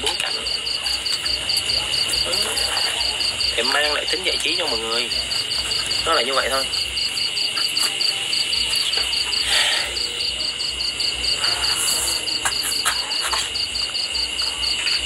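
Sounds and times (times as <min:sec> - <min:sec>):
insect chirping: 0:00.0 - 0:15.0.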